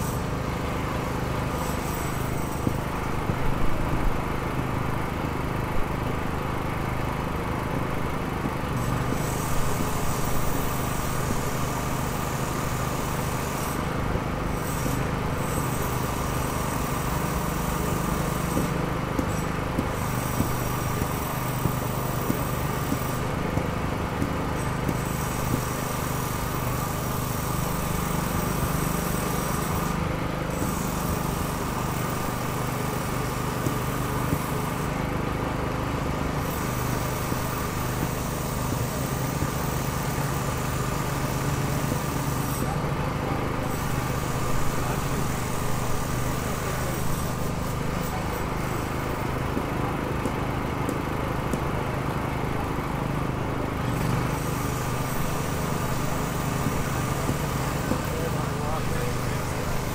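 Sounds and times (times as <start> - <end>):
machinery engine running: 0.0 - 59.9.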